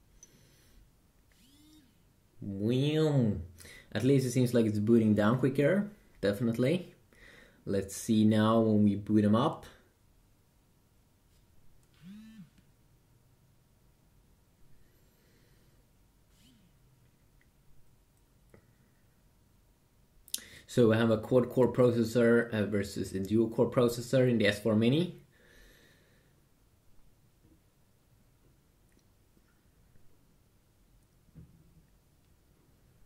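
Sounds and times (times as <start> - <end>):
phone vibration buzz: 1.3 - 2.1, 11.9 - 12.7, 16.3 - 16.9
faint rising and falling tone: 16.3 - 17.4.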